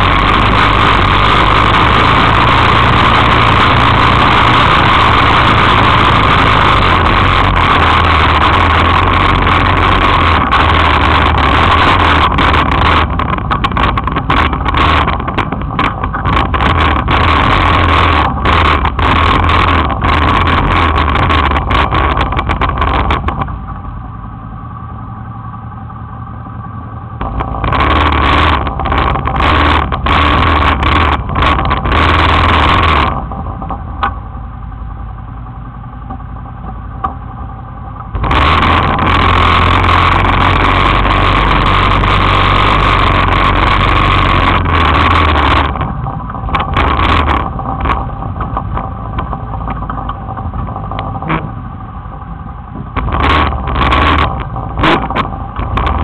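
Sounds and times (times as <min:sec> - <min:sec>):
quad engine running: 0:00.0 - 0:56.0.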